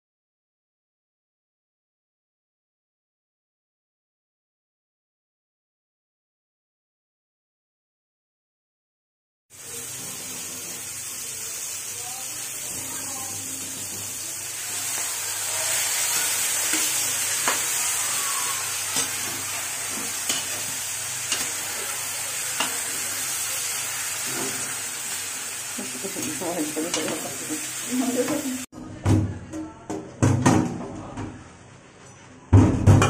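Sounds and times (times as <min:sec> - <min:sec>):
food sizzling in oil: 0:09.5 - 0:28.7.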